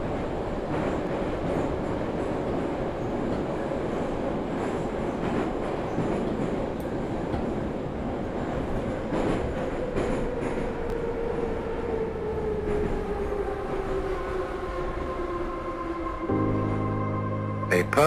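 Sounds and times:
train rumbling: 0.0s - 18.0s
train wheels clacking: 8.8s - 10.8s.

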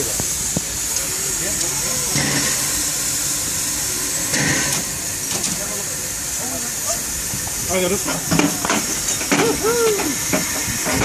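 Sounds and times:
steam locomotive hissing steam: 0.0s - 11.0s.

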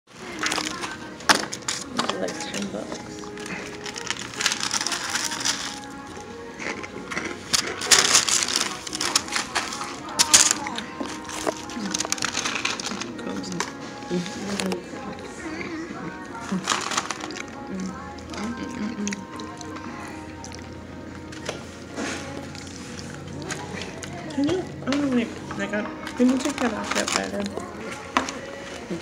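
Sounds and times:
background music: 0.1s - 29.0s
indistinct voices: 0.1s - 29.0s.

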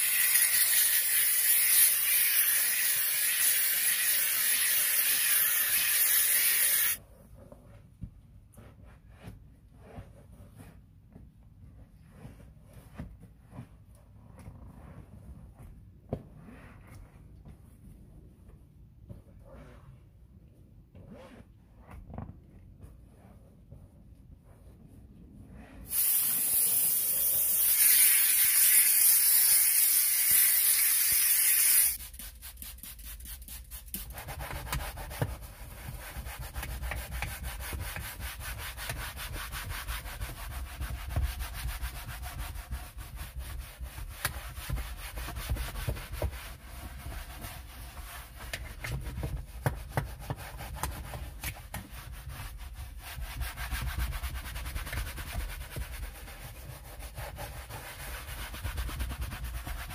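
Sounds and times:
hand brush scrubbing leather: 0.0s - 7.0s, 22.9s - 59.9s
steam cleaner nozzle hissing: 25.9s - 32.0s.

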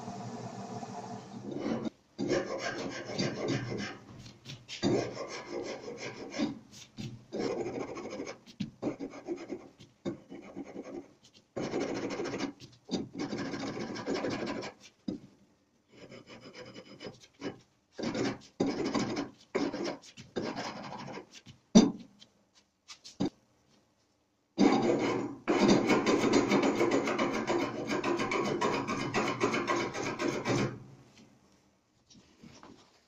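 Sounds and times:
file scraping wood: 1.4s - 6.6s, 7.3s - 14.9s, 24.6s - 30.8s.

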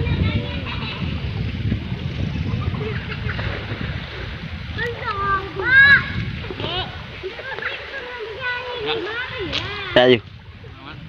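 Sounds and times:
river water running over stones: 3.4s - 10.8s.

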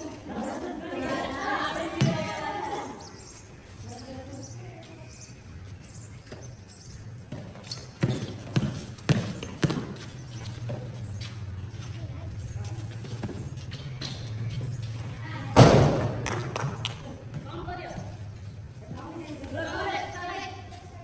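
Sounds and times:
basketball bouncing on pavement: 2.0s - 2.4s, 7.2s - 11.5s, 15.5s - 18.2s.

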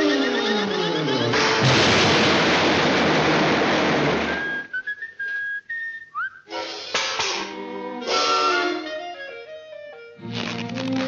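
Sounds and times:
cartoon crash rushing noise: 1.4s - 4.7s
whistled notes with slides: 4.3s - 6.5s.

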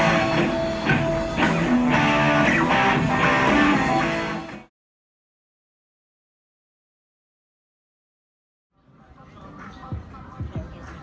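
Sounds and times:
electric guitar strumming chords: 0.0s - 4.7s.

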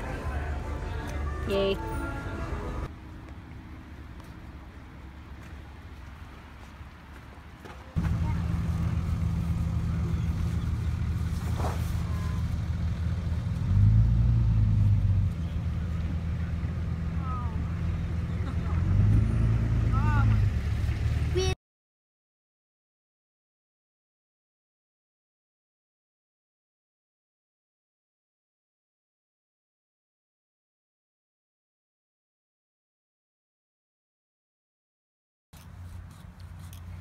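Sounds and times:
vehicle engine running: 0.0s - 21.6s.

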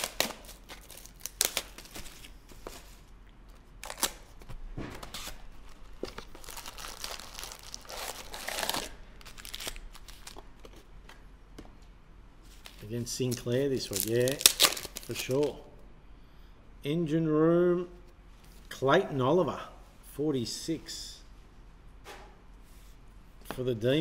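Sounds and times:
foil packs crinkling: 0.0s - 3.0s, 5.2s - 10.4s, 12.6s - 15.6s.

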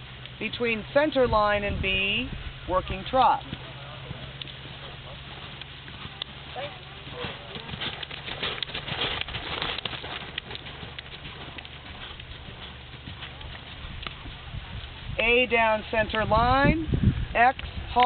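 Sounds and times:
steady low hum: 0.0s - 18.0s
hoofbeats on dirt: 2.8s - 16.6s.

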